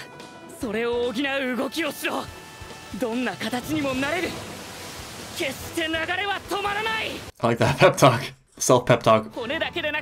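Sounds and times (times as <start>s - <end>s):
steady rushing noise: 3.0s - 7.3s
person shouting dialogue: 5.4s - 7.3s.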